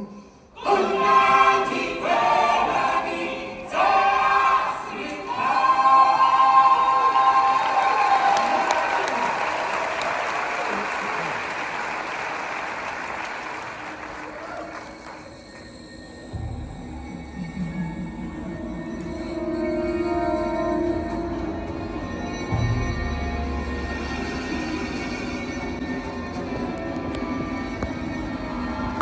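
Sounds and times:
ensemble singing in chorus: 0.0 - 7.8
audience applauding: 6.8 - 15.8.

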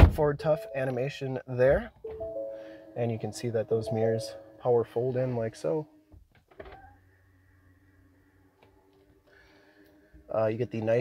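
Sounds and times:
faint steady hum: 0.4 - 11.0.

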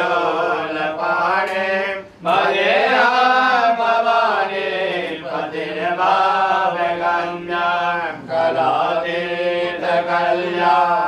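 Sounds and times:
person chanting a hymn: 0.0 - 11.0.

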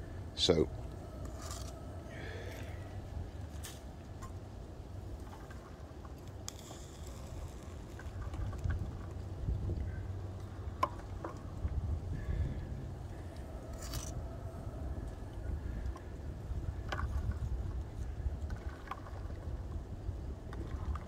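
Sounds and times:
wind rumble on microphone: 0.0 - 21.0.

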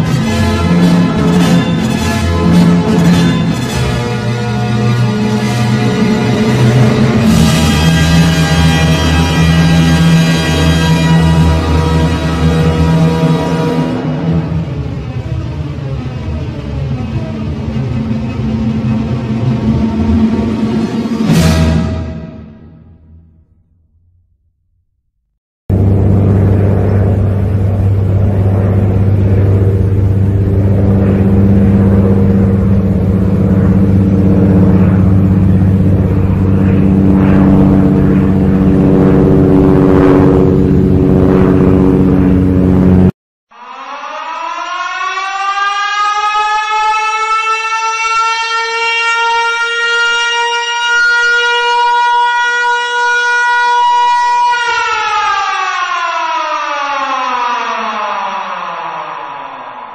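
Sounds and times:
loud engine drone: 0.0 - 23.3, 25.7 - 55.6, 58.2 - 59.9
air-raid siren: 0.0 - 23.4, 25.7 - 59.9.

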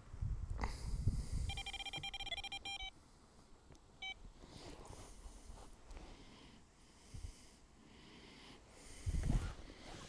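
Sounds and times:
bite alarm beeps: 1.5 - 2.9.

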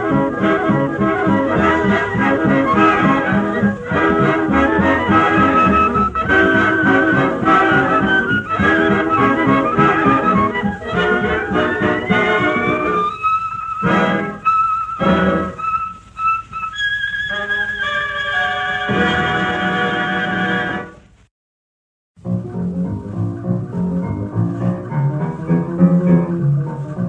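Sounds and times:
boogie-woogie dance band brass: 0.0 - 13.0, 13.8 - 14.4, 15.0 - 16.0, 17.3 - 21.0.

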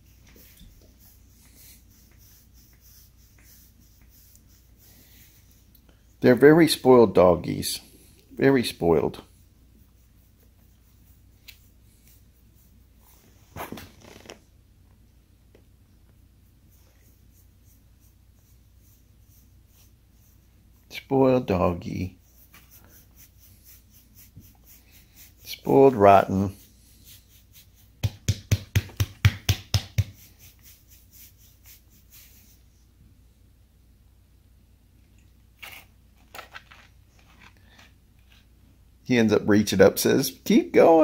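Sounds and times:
hand rubbing fur: 0.0 - 14.5, 16.4 - 32.9
hand patting dog: 28.0 - 30.2.

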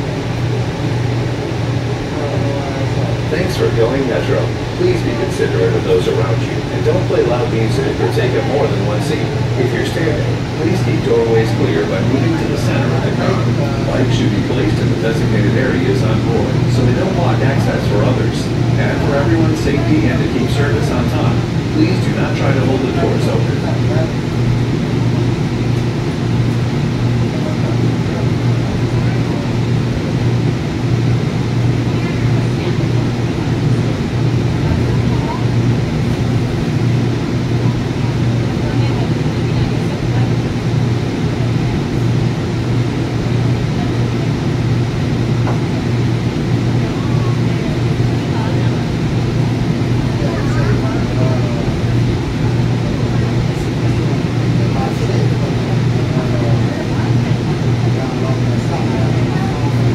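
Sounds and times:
train interior hum: 0.0 - 59.9
wheels rumbling on track: 0.0 - 59.9.

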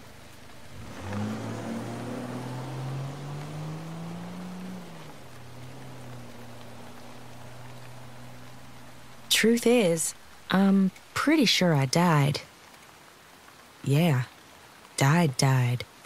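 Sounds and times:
steady rain: 0.0 - 16.0.

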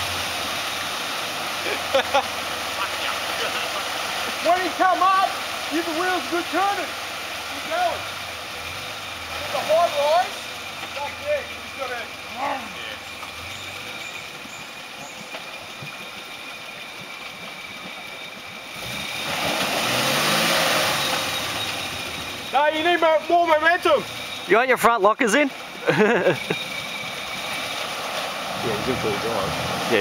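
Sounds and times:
engine revving: 0.0 - 14.5, 18.6 - 24.8, 25.8 - 30.0
engine running at low revs: 25.5 - 30.0.

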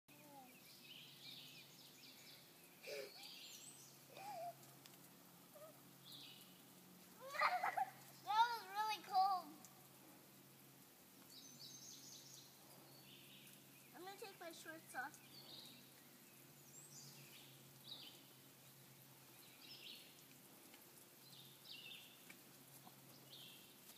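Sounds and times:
faint outdoor hiss: 0.1 - 23.9
girl squealing and calling: 4.1 - 4.6, 7.2 - 8.8.

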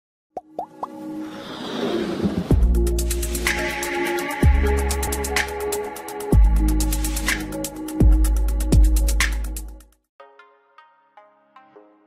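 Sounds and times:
music riser: 0.9 - 7.9.

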